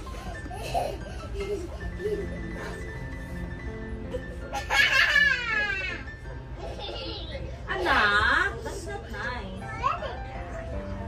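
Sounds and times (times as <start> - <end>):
soft background music: 0.0 - 11.0
young child laughing: 0.2 - 2.8, 4.5 - 6.0, 6.6 - 7.5.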